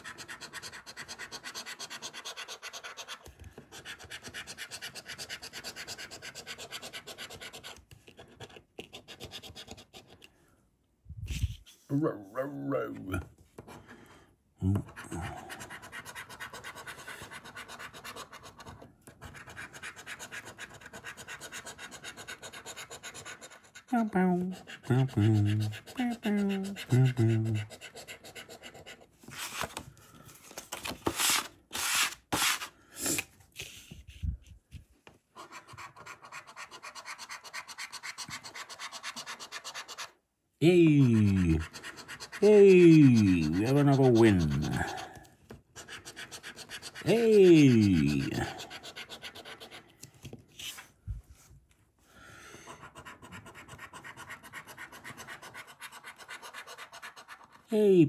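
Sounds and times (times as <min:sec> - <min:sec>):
card rustling on table: 0:29.2 - 0:35.9, 0:49.9 - 0:51.8
coin scraping scratchcard: 0:41.1 - 0:45.1.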